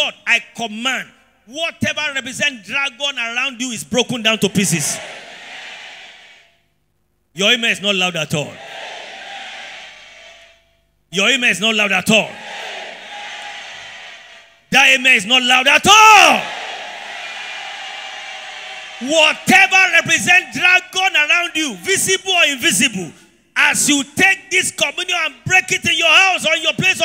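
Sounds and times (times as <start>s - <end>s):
room tone hiss: 0.0s - 25.5s.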